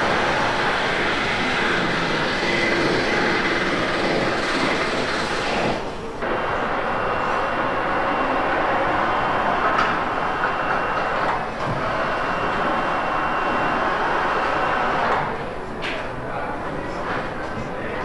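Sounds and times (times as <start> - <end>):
factory machinery and conveyor: 0.0 - 18.0.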